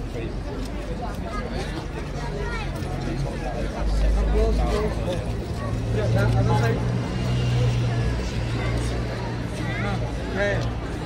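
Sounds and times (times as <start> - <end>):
people talking: 0.0 - 11.0
vehicle engine drone: 3.1 - 11.0.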